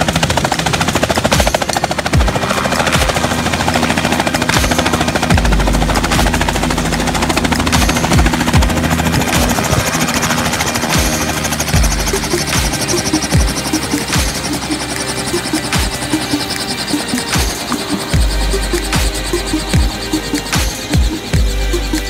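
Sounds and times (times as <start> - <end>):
helicopter rotor chopping: 0.0 - 22.0
low rumble: 2.0 - 22.0.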